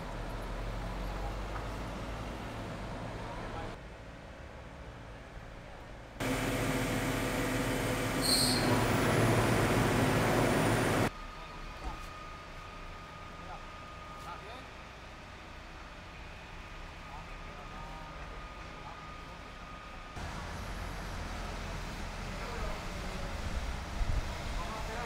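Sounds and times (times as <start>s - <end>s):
street background: 0.0s - 25.0s
vehicle engine running: 6.2s - 11.1s, 20.2s - 25.0s.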